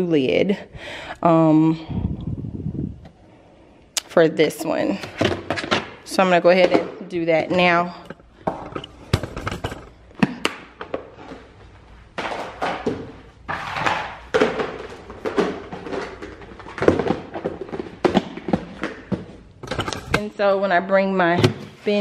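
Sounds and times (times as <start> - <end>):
plastic lids knocking and clicking: 5.0 - 11.2, 12.2 - 20.3.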